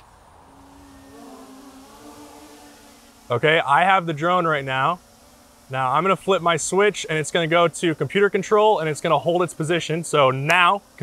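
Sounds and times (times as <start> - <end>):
drone motors whining: 0.0 - 11.0.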